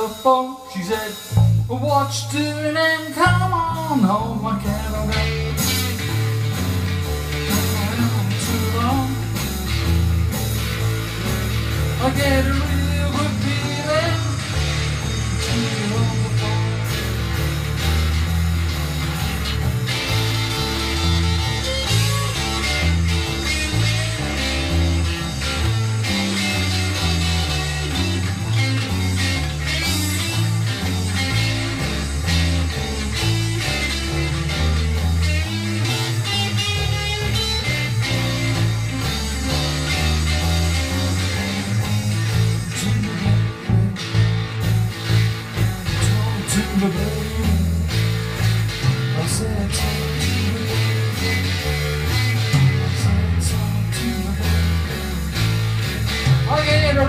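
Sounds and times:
bass line: 0.0 - 57.0
drums: 0.0 - 57.0
electric guitar lead: 0.0 - 57.0.

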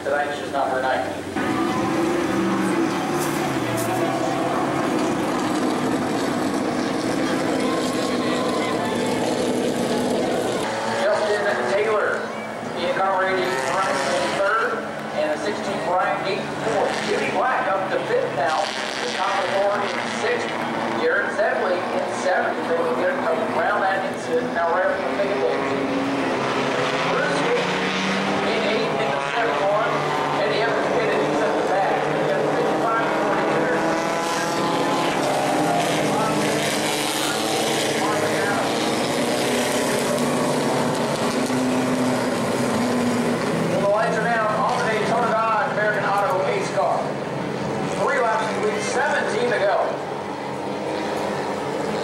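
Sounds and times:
people talking: 0.0 - 4.4, 6.8 - 25.7, 27.0 - 27.7, 28.4 - 35.2, 36.0 - 38.8, 43.7 - 47.1, 48.0 - 50.0
race car engines droning: 0.0 - 52.0.

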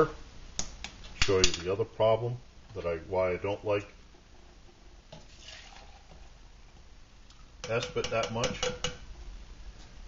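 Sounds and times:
hot water pouring from a pot: 5.2 - 6.3.

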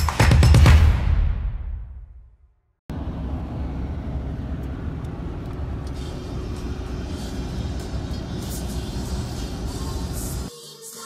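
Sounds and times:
car road noise on highway: 2.9 - 10.5.

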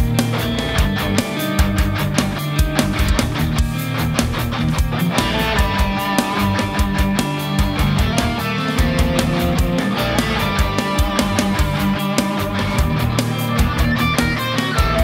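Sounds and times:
distorted electric guitar: 0.0 - 15.0
fast steady drums: 0.0 - 15.0.

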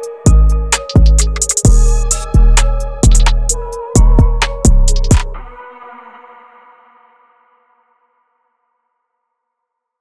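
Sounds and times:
sustained synth notes: 0.3 - 5.6.

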